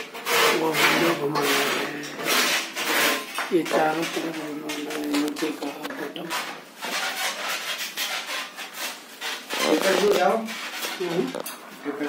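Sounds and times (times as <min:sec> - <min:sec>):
rhythmic rasping scraping strokes: 0:00.0 - 0:12.0.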